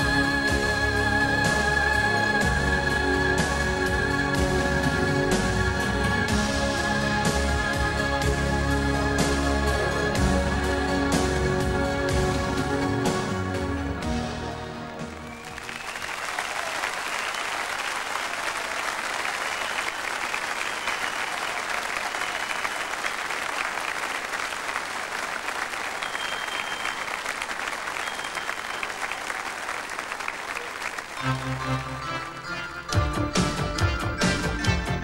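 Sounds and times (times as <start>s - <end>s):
large audience applauding: 14.4s - 32.5s.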